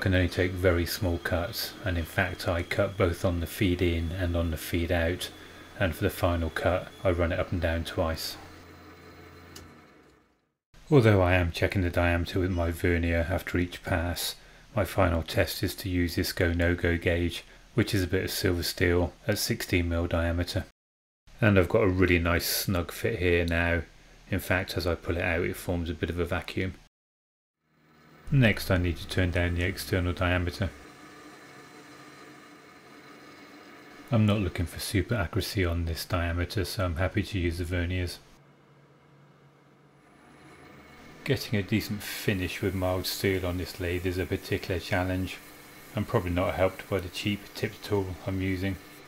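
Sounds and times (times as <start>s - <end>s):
metal lathe humming: 0.0s - 10.2s, 27.7s - 34.7s, 38.5s - 49.0s.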